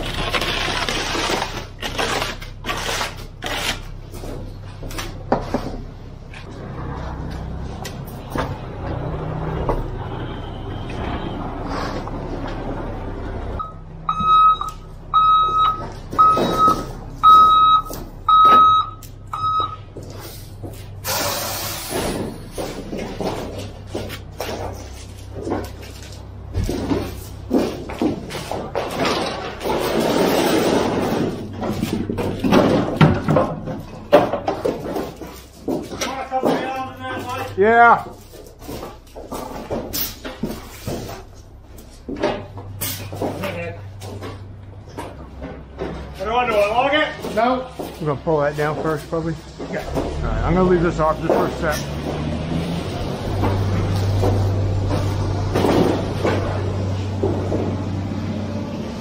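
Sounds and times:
concrete mixer truck running: 0.0s - 59.0s
high reverse alarm beeps: 13.6s - 19.9s
concrete scraping down metal chute: 20.3s - 41.5s.

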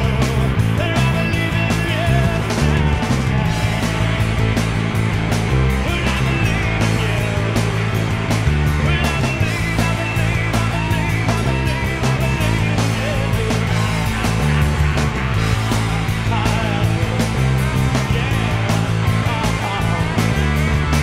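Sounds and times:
electric bass notes: 0.0s - 21.0s
electric guitars: 0.0s - 21.0s.

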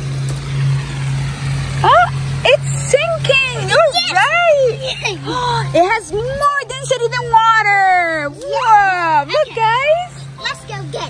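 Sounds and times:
fountain water falling: 0.0s - 11.0s
steady low hum: 0.0s - 11.0s
child's voice: 3.4s - 5.8s, 8.3s - 11.0s.

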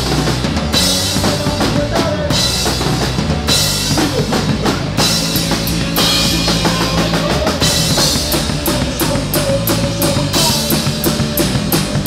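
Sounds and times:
drums and cymbals struck: 0.0s - 12.0s
live rock band playing: 0.0s - 12.0s.

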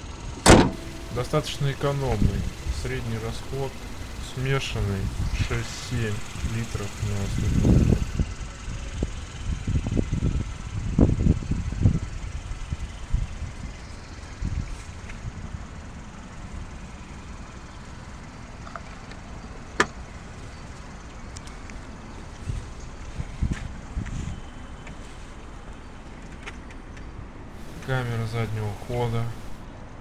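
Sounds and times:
fuel flap snapping shut: 0.4s - 1.1s
steady low rumble: 0.7s - 12.0s, 27.6s - 29.6s.

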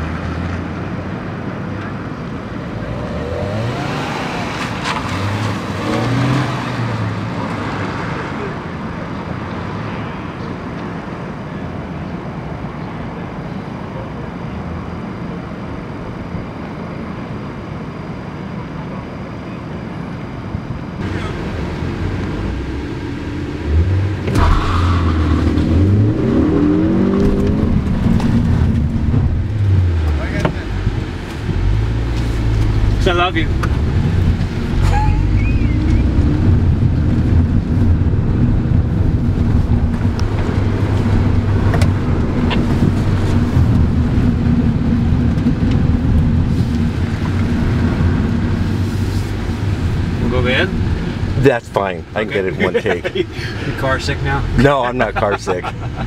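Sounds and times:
car engine accelerating: 0.0s - 8.8s, 21.0s - 56.0s
engine revving: 2.6s - 8.4s, 21.0s - 37.6s.

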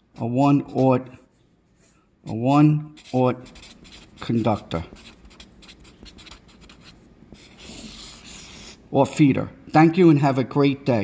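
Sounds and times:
marker scratching on paper: 0.2s - 8.9s.

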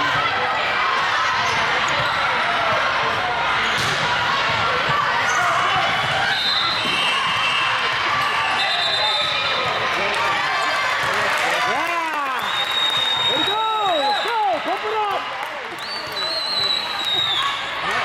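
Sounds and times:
many voices chattering and calling: 0.0s - 12.6s, 13.3s - 18.0s.

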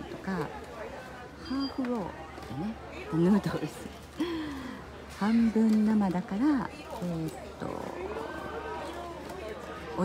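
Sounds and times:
shop hubbub with voices: 0.0s - 10.0s.

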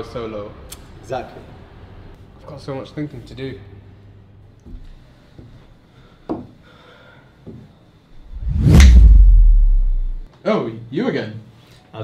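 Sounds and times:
deep low rumble: 8.2s - 10.3s
whoosh: 8.2s - 10.3s.

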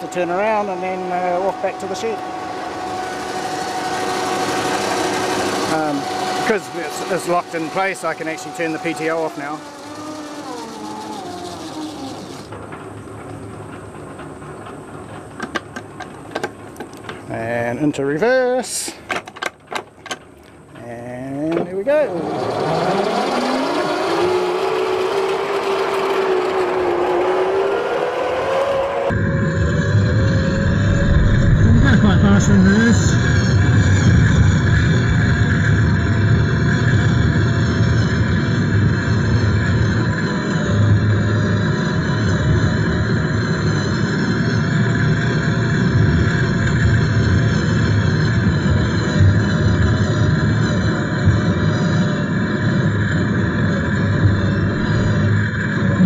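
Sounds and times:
electric motor whining: 0.0s - 13.1s, 21.8s - 56.0s
tractor rumble and rattle: 6.4s - 17.8s.

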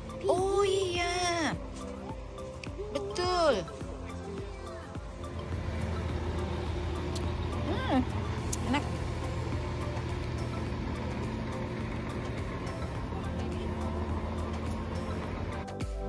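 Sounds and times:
vehicle engine idling: 3.9s - 15.8s.

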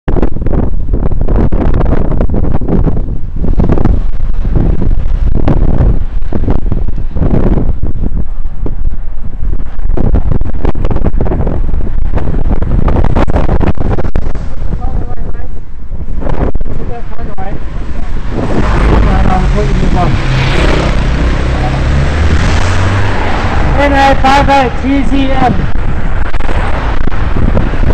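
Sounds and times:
wind buffeting microphone: 0.1s - 27.9s.

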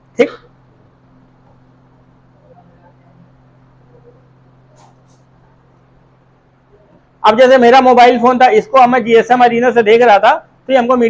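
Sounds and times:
faint low steady hum: 0.0s - 11.0s.

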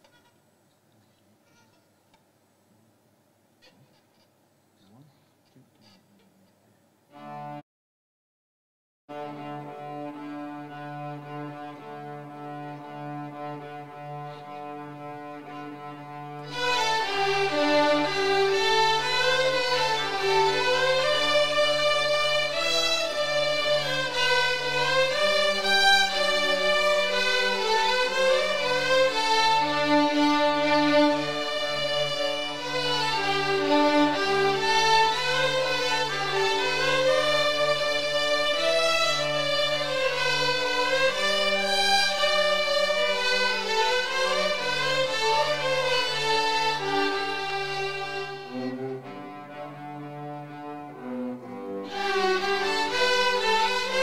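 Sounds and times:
string orchestra bowed notes: 7.1s - 7.6s, 9.1s - 54.0s
steady cello line: 9.1s - 54.0s
violins playing high: 9.1s - 54.0s.

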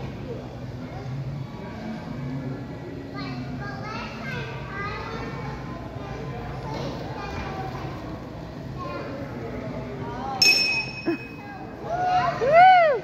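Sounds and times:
children calling and chattering: 2.9s - 10.4s.

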